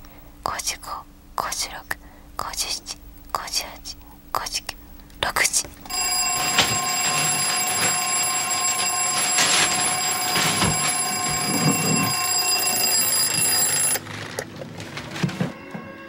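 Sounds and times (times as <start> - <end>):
alarm clock bell ringing: 5.9 - 14.2, 15.2 - 16.0.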